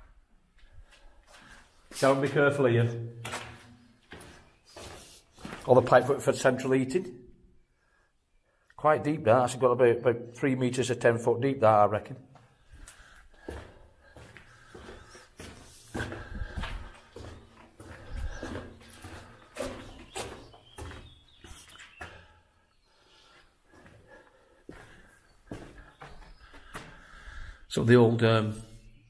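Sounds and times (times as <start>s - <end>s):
footsteps on gritty concrete: 3.2s - 6.2s, 12.4s - 22.4s, 23.2s - 27.2s.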